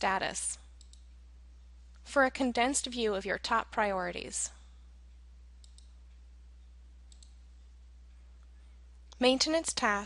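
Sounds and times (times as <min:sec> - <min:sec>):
faint low hum: 0:00.0 - 0:10.0
computer mouse clicks: 0:00.8 - 0:01.1, 0:05.6 - 0:06.0, 0:07.1 - 0:07.4.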